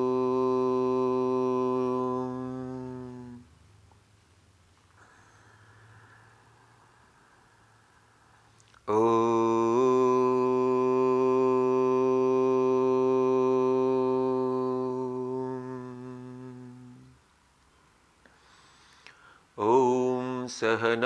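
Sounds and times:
man chanting om: 0.0s - 3.5s, 8.9s - 17.2s, 19.6s - 21.0s.

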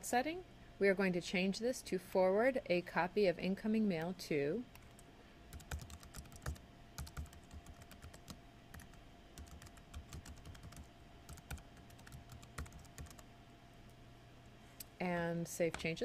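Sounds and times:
computer keyboard typing: 4.8s - 13.2s.

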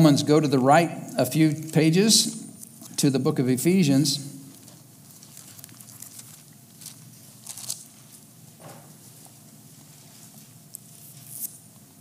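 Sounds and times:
faint room hum: 0.0s - 12.0s
book pages turning: 4.5s - 8.2s.

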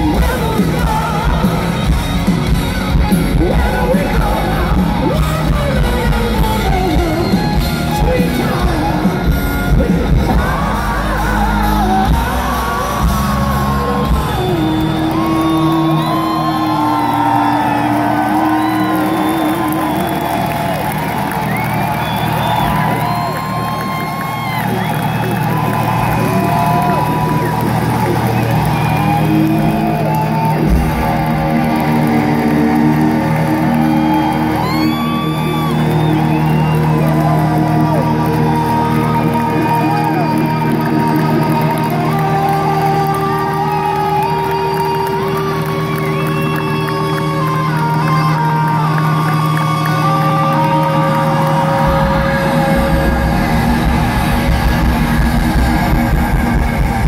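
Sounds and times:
bass and drums: 0.0s - 57.0s
crowd whooping: 0.0s - 57.0s
electric lead guitar: 0.0s - 57.0s.

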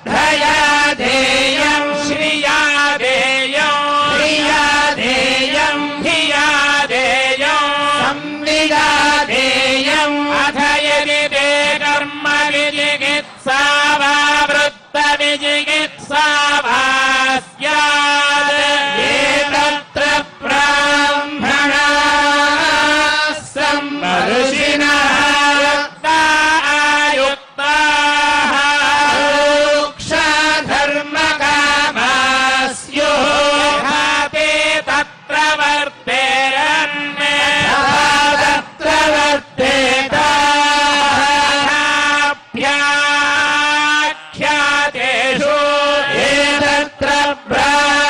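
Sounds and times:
man chanting through microphone: 0.0s - 48.0s.

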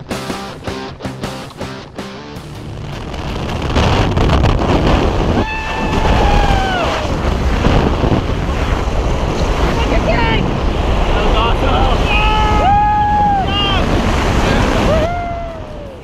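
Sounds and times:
freefall wind rushing: 2.2s - 16.0s.

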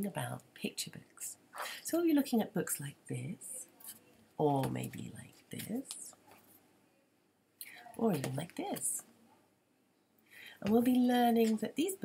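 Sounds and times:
person speaking: 0.0s - 6.2s, 7.6s - 9.1s.

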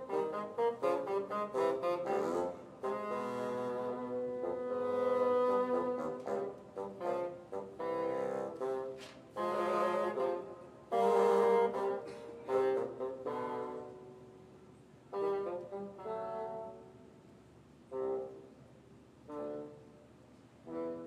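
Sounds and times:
bassoons playing duet: 0.0s - 21.0s.

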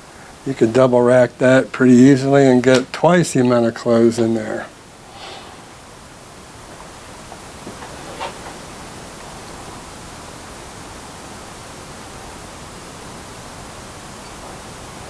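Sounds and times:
room noise hiss: 0.0s - 15.0s.

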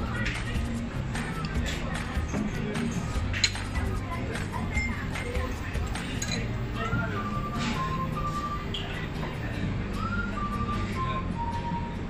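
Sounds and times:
background music: 0.0s - 12.0s
voices: 0.1s - 12.0s
chopsticks clinking on metal pot: 6.2s - 6.5s.

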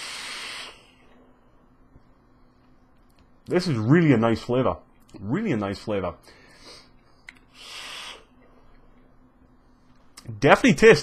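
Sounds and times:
vape hissing draw: 0.0s - 0.9s, 7.5s - 8.3s.

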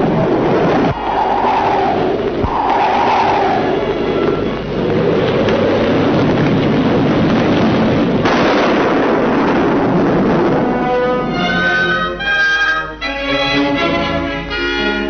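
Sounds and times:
old optical soundtrack noise: 0.0s - 15.0s
orchestral film score: 10.2s - 15.0s.

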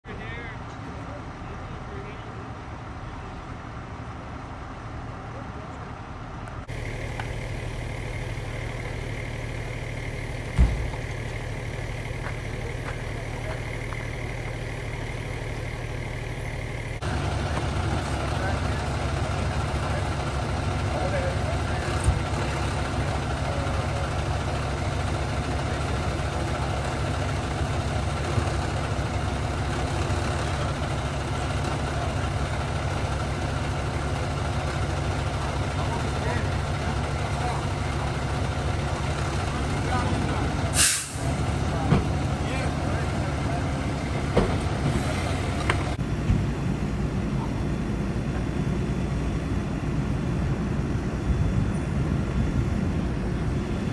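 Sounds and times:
diesel engine idling: 0.0s - 53.9s
air brake hiss: 40.7s - 41.3s.

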